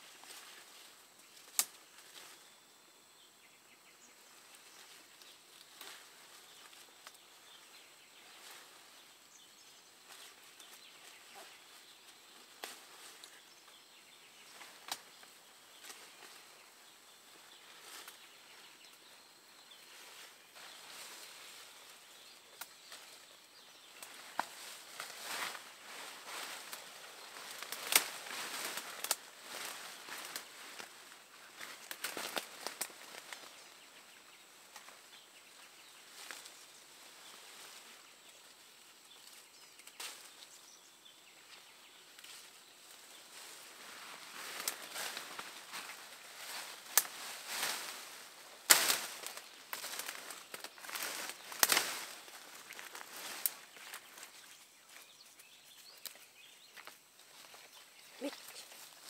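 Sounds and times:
shrub branches rustling: 0.0 - 59.0
twigs snapping: 1.4 - 1.8, 14.8 - 15.2, 27.4 - 30.9, 31.6 - 33.5, 46.8 - 48.0, 48.6 - 54.3.

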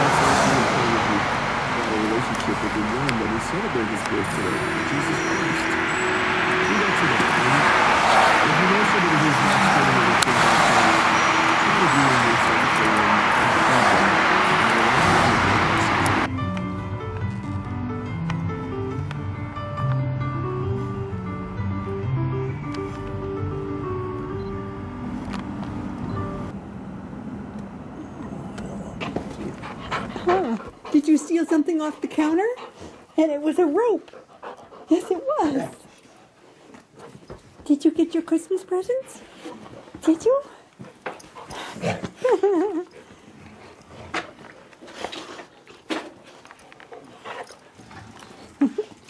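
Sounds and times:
music: 0.5 - 26.6
dogs mouthing and scuffling: 33.9 - 38.0, 39.2 - 49.0.

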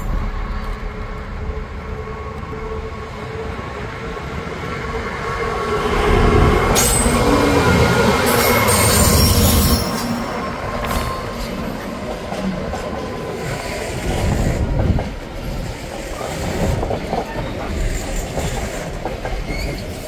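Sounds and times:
diesel locomotive rumble: 0.0 - 20.0
high-pitched wheel squeal: 6.7 - 11.5.

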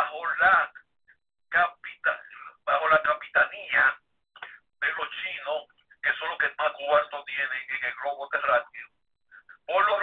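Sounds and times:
person speaking over telephone: 0.0 - 10.0.

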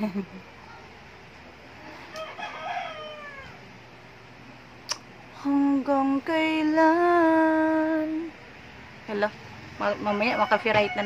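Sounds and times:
rooster crowing: 2.0 - 3.8, 9.8 - 11.0.

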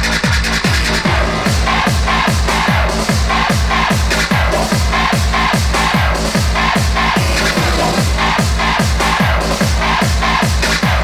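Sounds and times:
distorted kick drum: 0.0 - 11.0
pulsing high synth line: 6.9 - 9.3.

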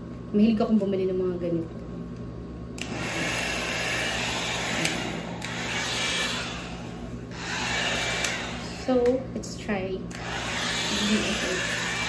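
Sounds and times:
hot-air brush fan blowing: 0.0 - 12.0.

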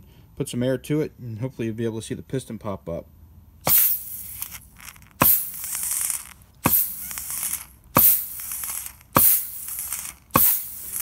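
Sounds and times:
compressed air hissing: 3.7 - 11.0.

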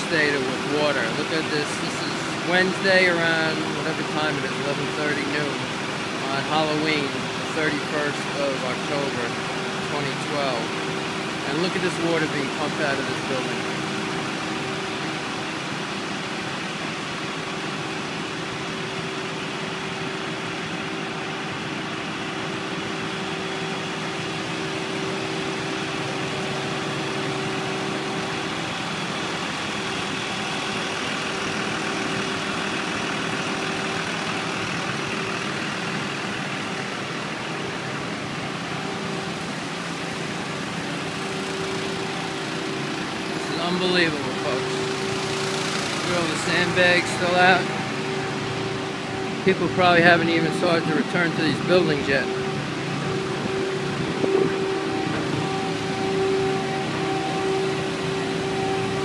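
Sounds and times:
engine-driven pump humming: 0.0 - 59.0.

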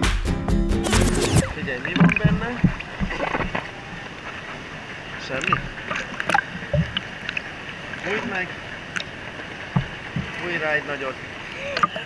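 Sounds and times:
pool water sloshing and lapping: 1.4 - 12.0.

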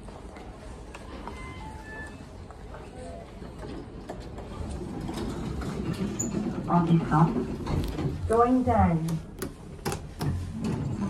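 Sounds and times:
elevator doors sliding open: 1.0 - 11.0.

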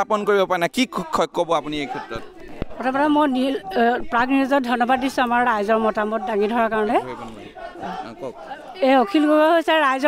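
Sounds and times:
people talking quietly: 0.0 - 10.0.

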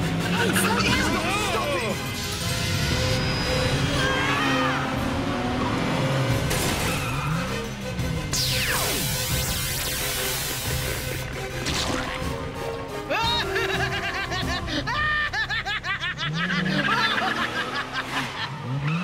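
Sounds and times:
cartoon action music: 0.0 - 5.1, 6.5 - 17.5
chase sound effects: 8.3 - 12.3
laser zap falling in pitch: 8.4 - 10.5.

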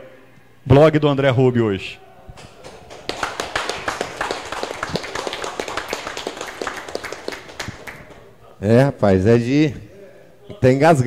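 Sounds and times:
small audience clapping: 2.3 - 8.4.

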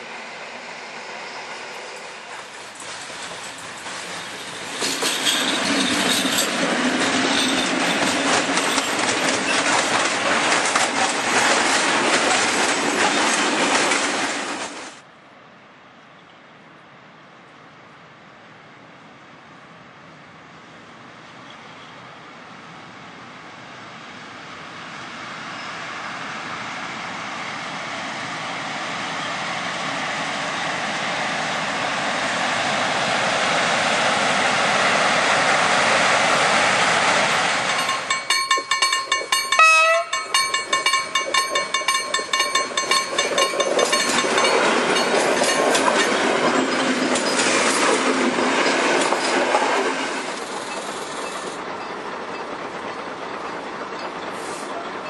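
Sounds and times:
freight train rolling past: 0.0 - 15.6, 16.2 - 55.0
wheels clacking over rail joints: 2.0 - 15.0, 37.2 - 55.0
train horn: 39.5 - 40.4.

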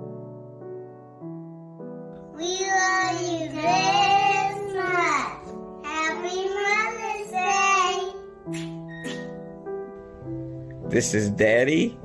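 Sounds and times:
soft piano accompaniment: 0.0 - 12.0
child singing: 2.3 - 8.3.

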